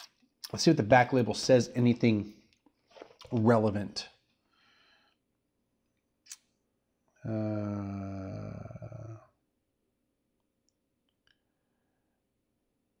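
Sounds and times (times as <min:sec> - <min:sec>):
man's low wordless hum: 0:07.2 - 0:09.3.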